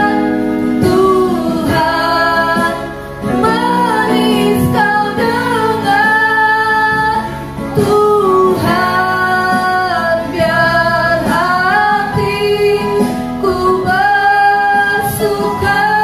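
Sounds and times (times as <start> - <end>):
electronic keyboard: 0.0 - 16.0
women singing: 0.0 - 16.0.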